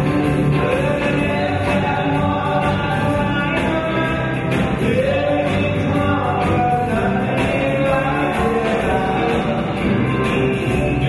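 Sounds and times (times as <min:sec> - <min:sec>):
drums: 0:00.0 - 0:11.0
electric guitars: 0:00.0 - 0:11.0
man singing: 0:00.0 - 0:11.0.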